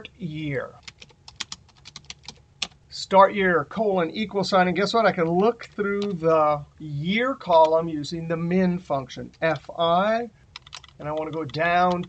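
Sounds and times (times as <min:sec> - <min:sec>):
computer keyboard typing: 0:00.8 - 0:02.8, 0:10.5 - 0:12.0.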